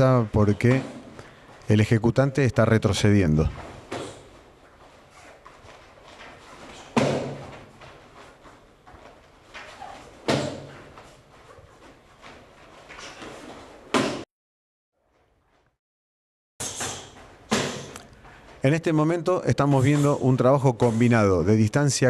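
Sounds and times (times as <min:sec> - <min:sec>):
kicks and punches on pads: 0:06.8 - 0:07.7, 0:10.2 - 0:10.8, 0:13.9 - 0:14.2.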